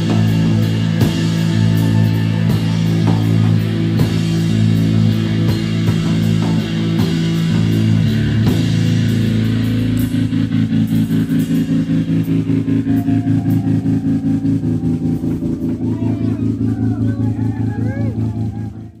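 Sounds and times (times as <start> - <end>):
electric guitar and bass droning chord: 0.0 - 19.0.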